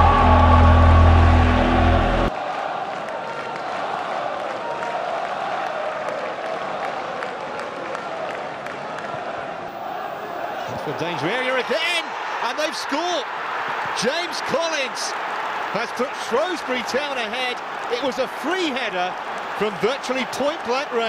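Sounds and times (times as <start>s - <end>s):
intro music sting with deep bass: 0.0s - 2.3s
stadium crowd noise: 0.0s - 21.0s.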